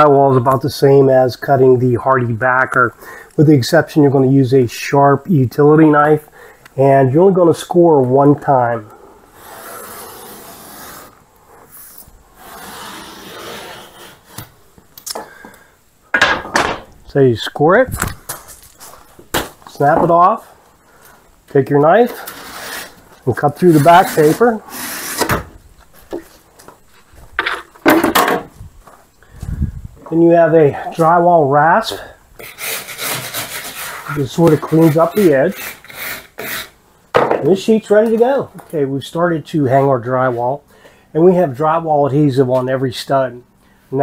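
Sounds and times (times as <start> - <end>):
utility knife scoring drywall paper: 9.4 - 14.5, 22.0 - 25.3, 32.4 - 36.8.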